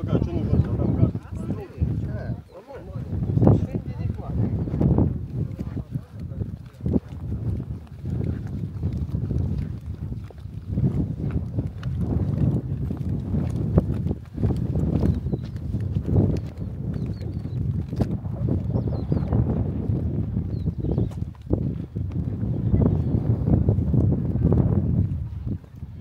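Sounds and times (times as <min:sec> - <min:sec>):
footsteps on stone path: 0:00.0 - 0:26.0
wind buffeting microphone: 0:00.0 - 0:26.0.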